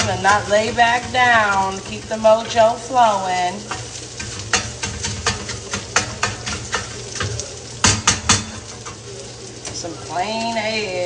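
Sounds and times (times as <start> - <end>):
metal tongs clicking on pan: 0.0 - 11.0
sausages sizzling: 0.0 - 11.0.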